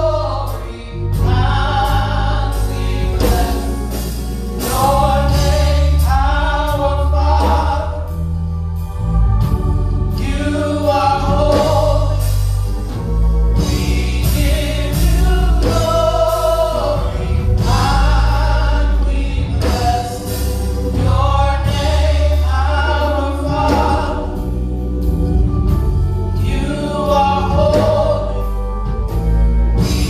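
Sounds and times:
vocal group singing gospel: 0:00.0 - 0:29.2
amplified accompaniment with bass: 0:00.0 - 0:30.0.

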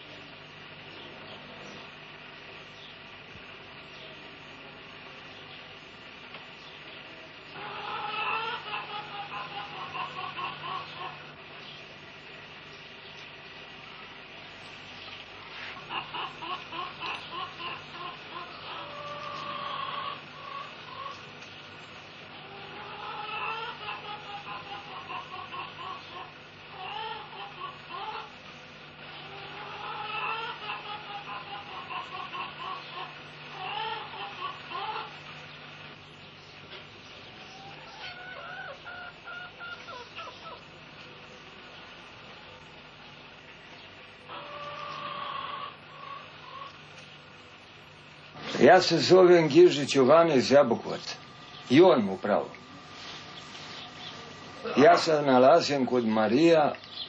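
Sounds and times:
steady low hum: 0:00.0 - 0:57.0
hens clucking and cackling: 0:07.4 - 0:11.7, 0:15.4 - 0:35.9, 0:36.6 - 0:56.7.

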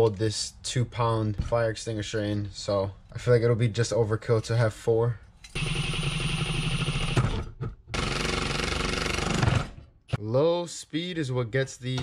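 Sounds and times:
impact driver drilling steel plate: 0:05.6 - 0:09.9.

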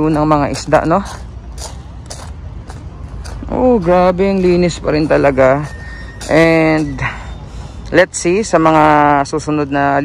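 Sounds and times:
footsteps crunching on sand: 0:00.0 - 0:08.1.

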